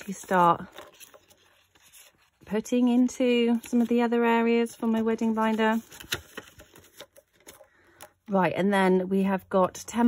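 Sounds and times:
banknotes and plastic pockets rustling: 0.0 - 8.2.

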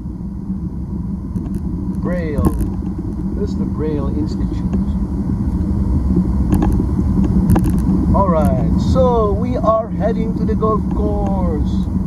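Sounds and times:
road and engine noise in car: 0.0 - 12.0.

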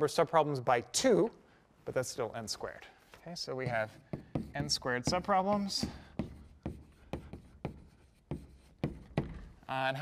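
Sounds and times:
chalk scraping on blackboard: 3.0 - 9.4
chalk tapping on blackboard: 3.4 - 9.6.

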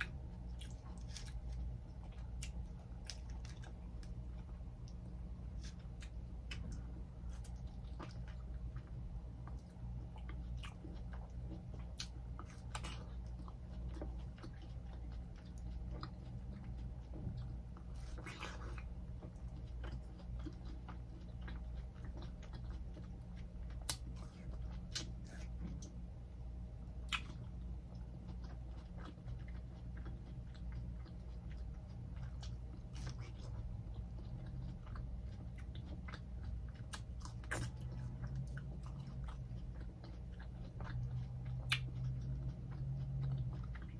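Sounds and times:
biting and chewing melon: 0.0 - 43.9
steady low hum: 0.0 - 43.9.

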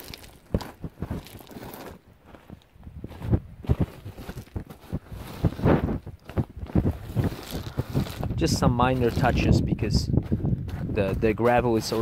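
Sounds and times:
boots scraping through gravel: 0.0 - 12.0.

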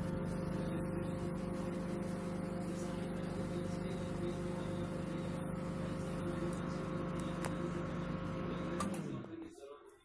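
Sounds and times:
microwave oven humming: 0.0 - 9.4
microwave timer click: 3.1 - 9.1.

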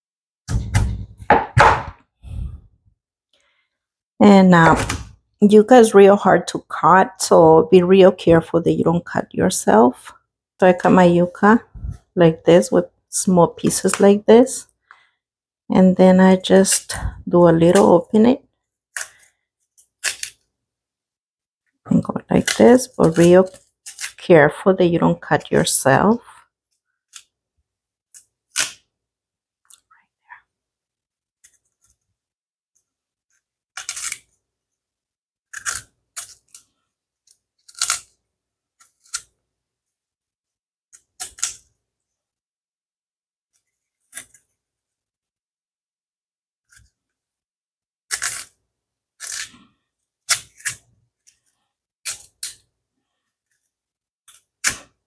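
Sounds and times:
knife scraping root skin: 18.9 - 20.5, 22.3 - 24.2, 28.1 - 28.9, 33.3 - 34.4, 35.5 - 38.2, 40.9 - 41.7, 44.0 - 44.5, 48.1 - 48.6, 49.2 - 52.7.

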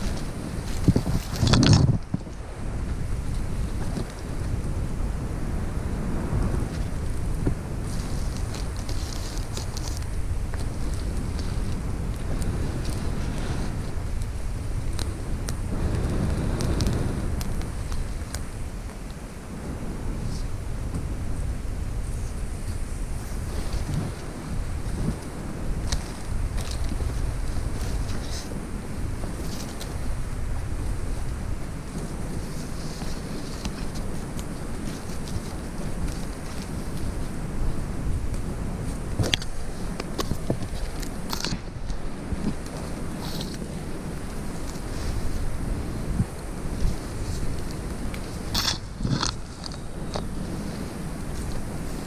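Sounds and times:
rustling through dry leaves: 0.0 - 52.0
wind buffeting microphone: 0.0 - 52.0.

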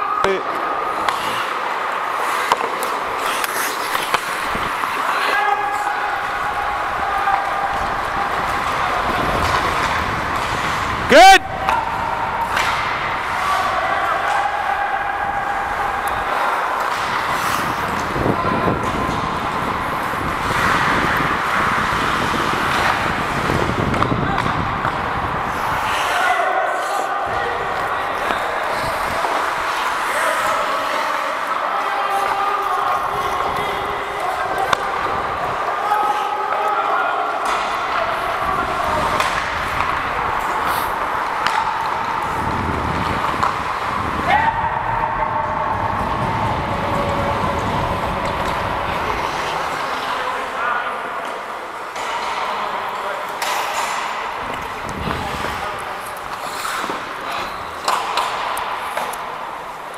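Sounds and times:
skates on ice: 0.0 - 59.9
sticks and puck knocking: 2.3 - 5.1, 37.4 - 44.1, 53.3 - 59.9.

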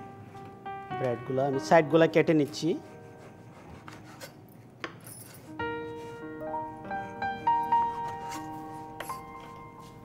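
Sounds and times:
knife rasping through bread crust: 2.8 - 4.4.

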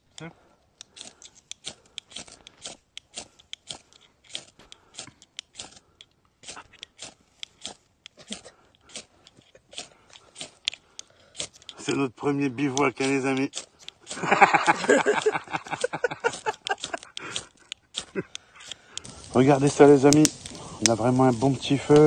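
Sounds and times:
knives shaving sticks: 0.0 - 22.0.

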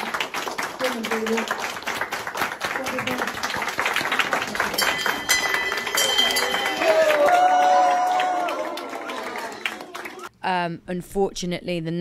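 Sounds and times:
people clapping: 0.0 - 10.3
small bell ringing: 4.7 - 7.1.

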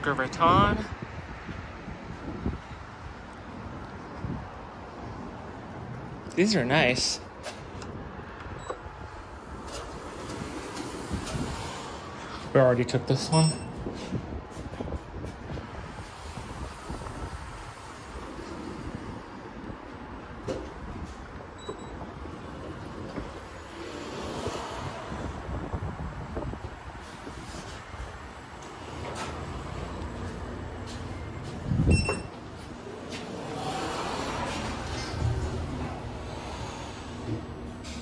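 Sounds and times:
elevator doors sliding: 8.4 - 12.2, 20.6 - 24.9, 27.0 - 38.0
short high beep: 13.3 - 13.8.

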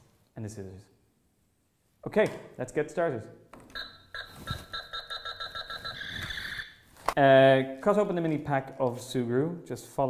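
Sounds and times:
electronic warbling tone: 3.8 - 6.8
toy rapid high beeps: 3.8 - 6.8.

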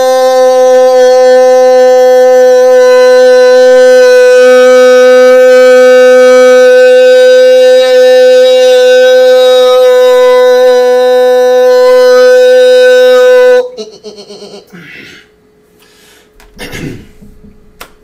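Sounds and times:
man singing a held note: 0.0 - 13.8.

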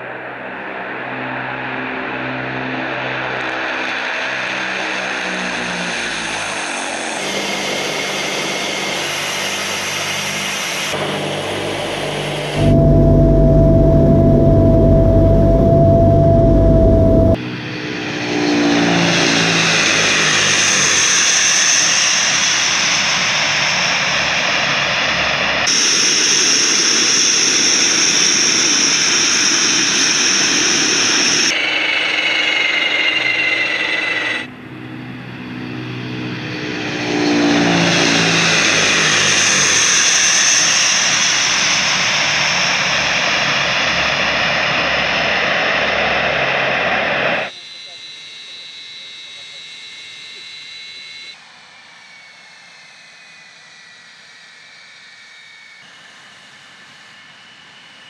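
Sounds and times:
turboprop aircraft engines roaring: 0.0 - 58.0.

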